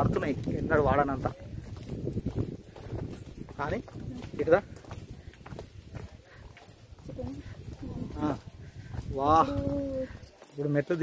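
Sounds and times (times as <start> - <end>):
footsteps on stone steps: 0.0 - 11.0.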